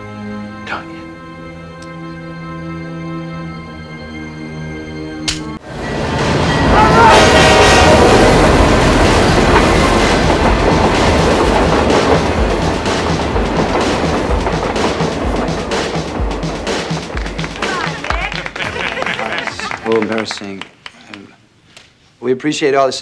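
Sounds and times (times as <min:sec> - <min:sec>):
train rumbling past: 0:05.6 - 0:19.1
wheels clattering over rail joints: 0:08.0 - 0:17.6.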